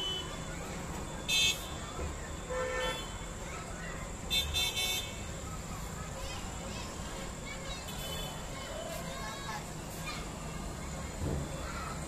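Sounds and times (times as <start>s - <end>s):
vehicle horns honking: 0.0s - 0.4s, 1.3s - 1.8s, 2.5s - 3.2s, 4.3s - 5.2s.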